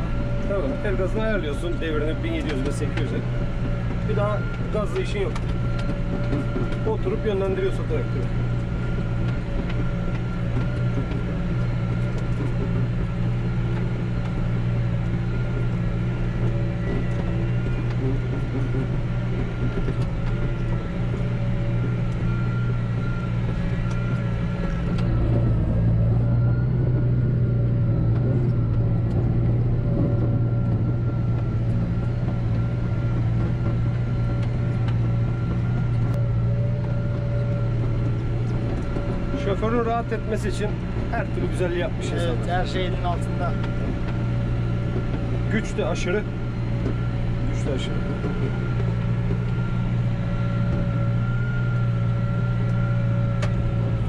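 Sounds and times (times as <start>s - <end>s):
tractor engine running under load: 0.0s - 54.0s.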